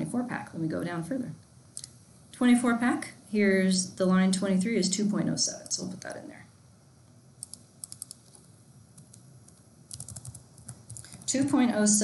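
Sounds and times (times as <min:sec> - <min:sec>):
computer keyboard typing: 0:07.4 - 0:08.4, 0:09.0 - 0:11.6.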